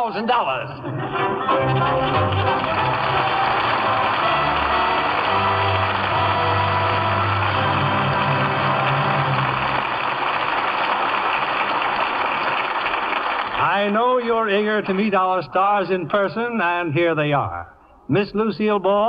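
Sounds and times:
orchestral music: 0:00.8 - 0:10.8
audience applauding: 0:00.9 - 0:14.2.

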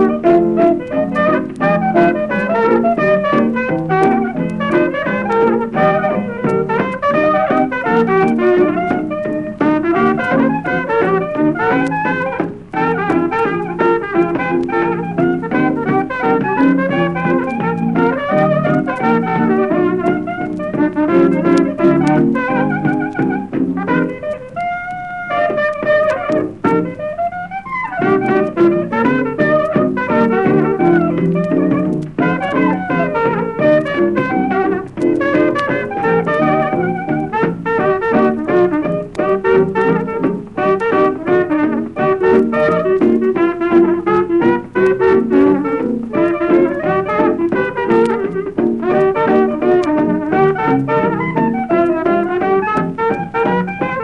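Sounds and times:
jazz band playing: 0:00.0 - 0:54.0.

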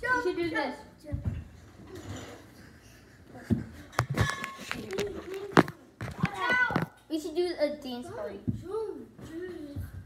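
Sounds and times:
children jumping and landing: 0:01.0 - 0:07.0.

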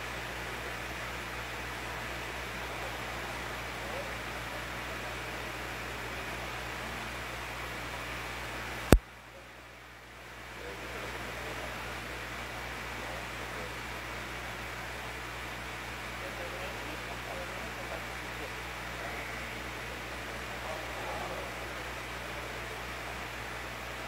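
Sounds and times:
room noise hiss: 0:00.0 - 0:24.0.

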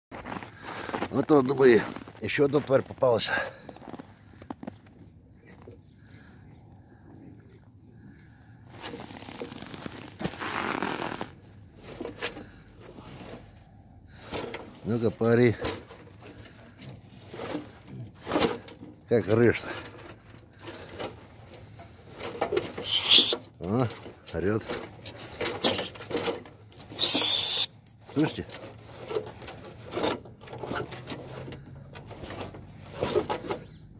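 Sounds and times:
rat squealing: 0:22.8 - 0:23.4, 0:26.9 - 0:27.7.

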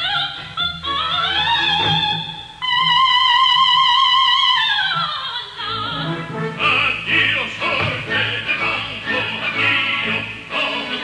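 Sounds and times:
quiet orchestra: 0:00.0 - 0:11.0
soprano singing with vibrato: 0:00.0 - 0:11.0.

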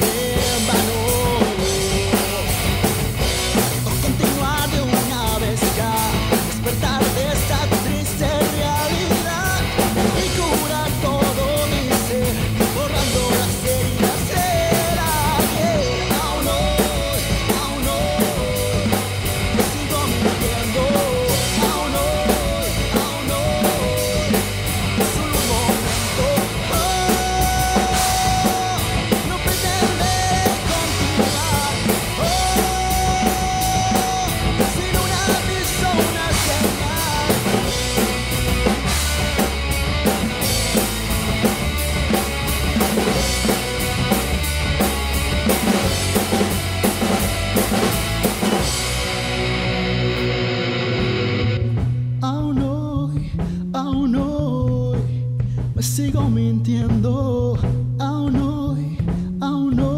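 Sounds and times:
rock drum kit played hard: 0:00.0 - 0:59.9
rock guitar backing: 0:00.0 - 0:59.9.

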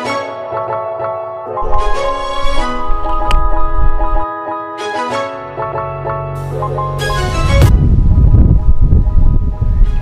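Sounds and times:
wind buffeting microphone: 0:01.6 - 0:04.2, 0:07.6 - 0:10.0.

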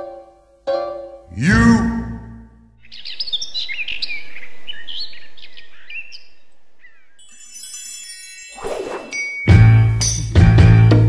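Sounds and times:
birds chirping and whistling: 0:02.8 - 0:09.4
bell-like tinkling tones: 0:07.2 - 0:10.4.

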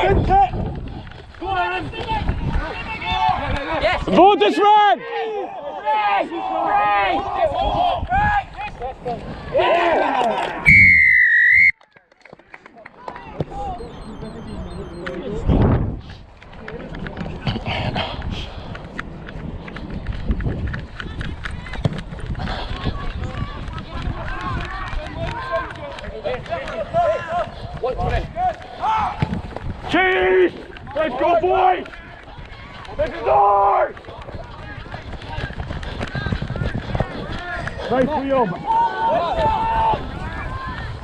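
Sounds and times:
running footsteps on turf: 0:31.8 - 0:39.6
players shouting: 0:38.4 - 0:40.9.

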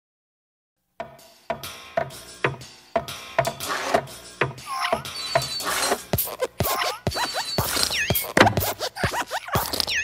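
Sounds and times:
music: 0:00.8 - 0:10.0
short gliding squeaks: 0:05.0 - 0:06.1
sharp cartoon knocks: 0:08.1 - 0:08.8.

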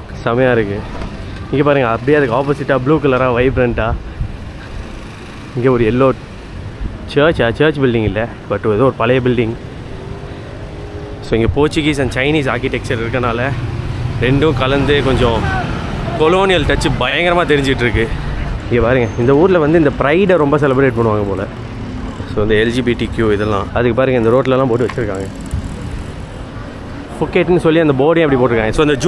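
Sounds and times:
noisy background: 0:00.0 - 0:29.0.

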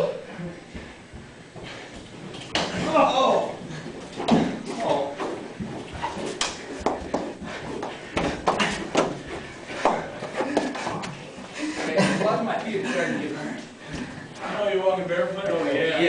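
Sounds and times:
men calling out: 0:02.7 - 0:03.6
men laughing: 0:10.2 - 0:13.6.

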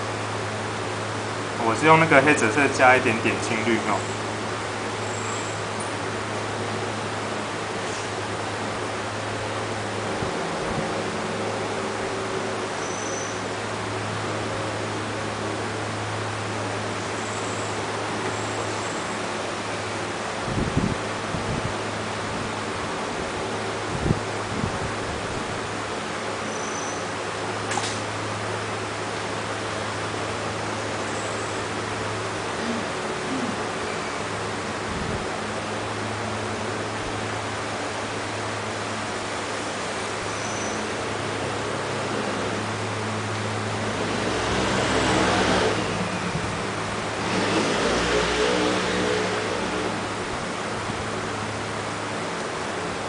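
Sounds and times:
constant low hum: 0:00.0 - 0:53.0
steady background hiss: 0:00.0 - 0:53.0.

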